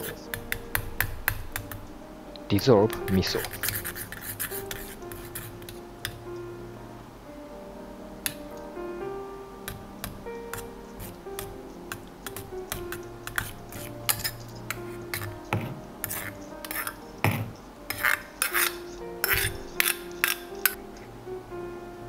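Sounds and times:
metal spoon scraping a mesh strainer: 3.1s - 5.6s, 13.2s - 15.4s, 16.0s - 17.0s, 17.9s - 20.4s.

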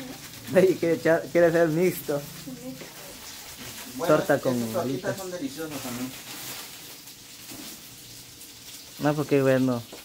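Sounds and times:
food sizzling in oil: 0.0s - 10.0s.

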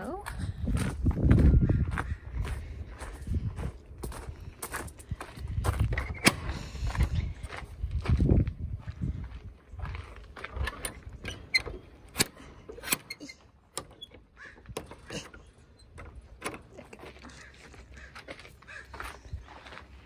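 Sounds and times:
metal bolt sliding clicks: 10.6s - 16.7s.

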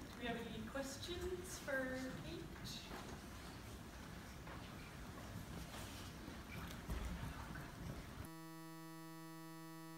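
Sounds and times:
steady electronic buzzing tone: 8.2s - 9.9s.

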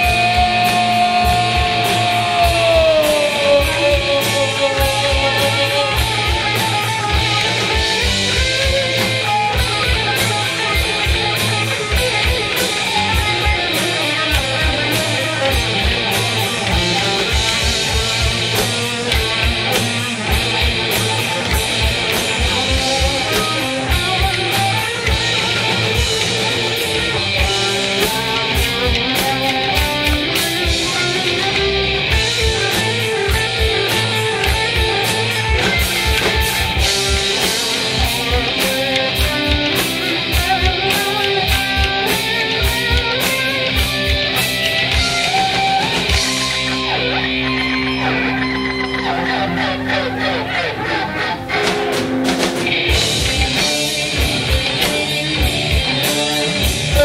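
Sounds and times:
drums and cymbals: 0.0s - 49.0s, 50.9s - 57.0s
electric guitars: 0.0s - 57.0s.

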